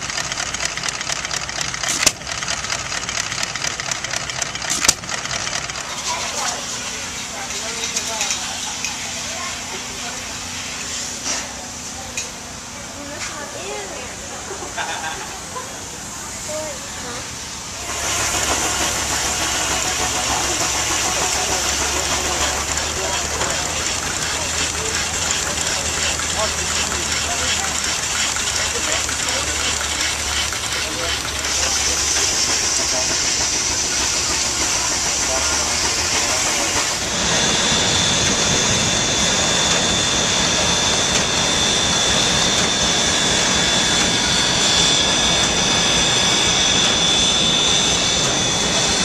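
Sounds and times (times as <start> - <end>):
steam hissing: 0.0 - 13.1, 13.9 - 49.0
high-pitched generator whine: 0.0 - 49.0
steam pump running: 0.0 - 49.0.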